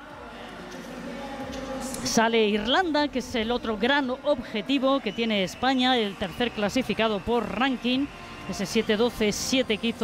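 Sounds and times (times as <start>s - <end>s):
low murmur of indoor hall: 0.0s - 10.0s.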